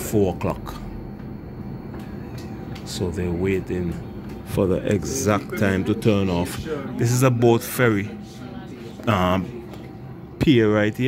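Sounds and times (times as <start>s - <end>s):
bus engine hum and rumble: 0.0s - 10.5s.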